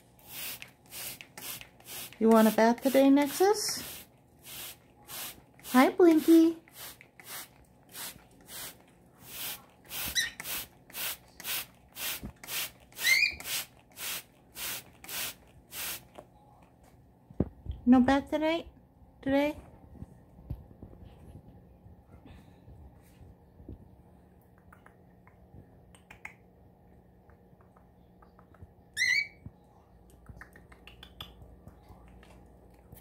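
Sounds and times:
spray bottle squirts: 0.2s - 16.2s
cockatiel chirp: 13.0s - 13.4s, 29.0s - 29.4s.

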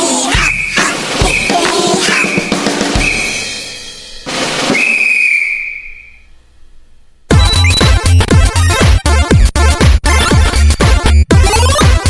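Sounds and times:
high whistle-like note: 0.3s - 3.7s, 4.6s - 6.3s, 7.3s - 8.0s
music hit: 0.4s - 6.1s.

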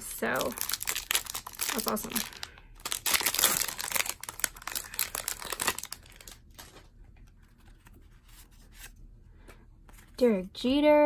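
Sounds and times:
foil wrapper tearing and crinkling: 0.2s - 6.9s
cards rustling: 0.4s - 10.2s.

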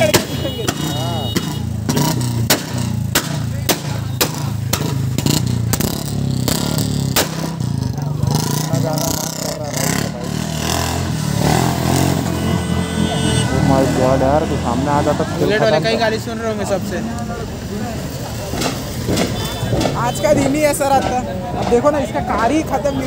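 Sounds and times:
people's voices: 0.0s - 2.2s, 2.8s - 23.0s.

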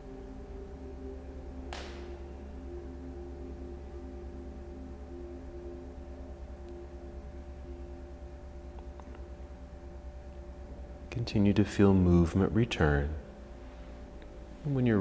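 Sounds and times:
ambient drone music: 0.0s - 15.0s
low steady hum: 0.0s - 15.0s.

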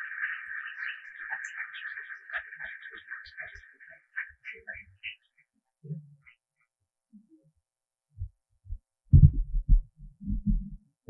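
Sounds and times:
microphone handling thumps and rubbing: 8.2s - 10.9s.

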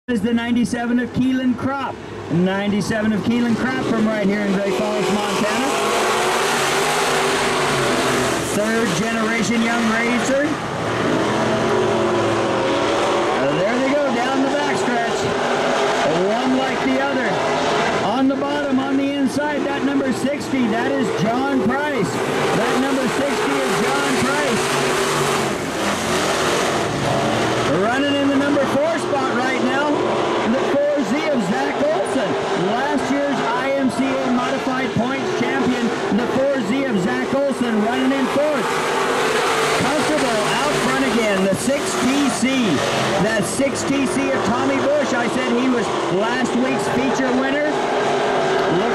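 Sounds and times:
race car engines droning: 0.0s - 48.9s.

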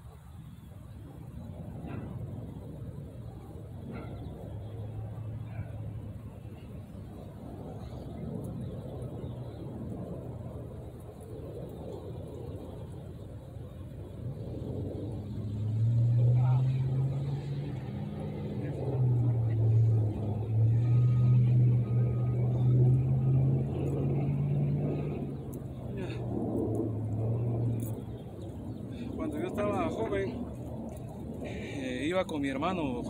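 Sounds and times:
vehicle engine running: 15.1s - 31.8s.

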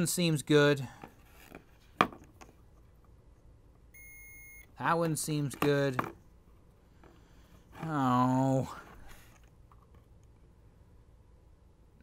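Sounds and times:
meter high single-tone beep: 4.0s - 4.7s.

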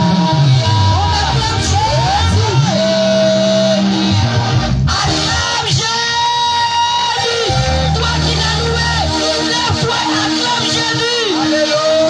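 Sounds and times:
deep bass line: 0.0s - 6.0s, 7.3s - 12.0s
lead line holding long notes: 0.0s - 12.0s.

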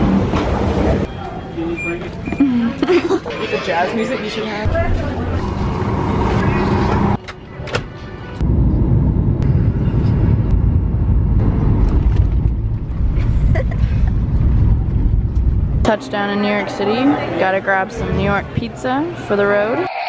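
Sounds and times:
jet cabin engine rumble: 8.4s - 15.8s.

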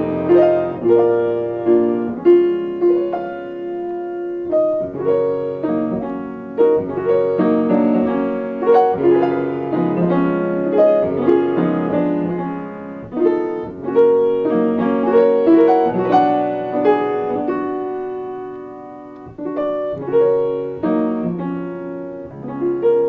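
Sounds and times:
solo piano lullaby: 0.0s - 23.0s.

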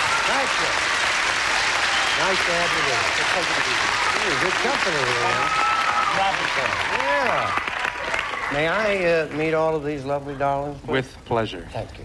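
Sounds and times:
audience applauding: 0.0s - 9.9s.

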